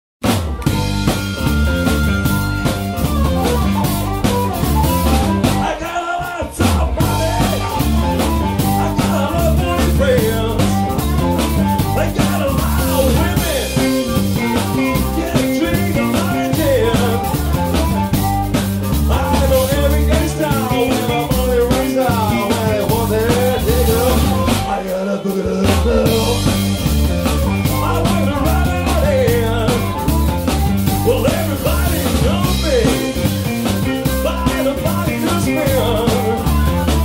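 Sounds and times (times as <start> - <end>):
blues-funk band playing: 0.2 - 37.0
amplified blues harmonica: 0.5 - 37.0.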